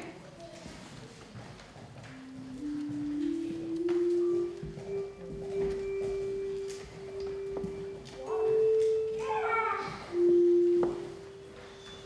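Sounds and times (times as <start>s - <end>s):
handbell choir ringing notes: 2.6s - 12.0s.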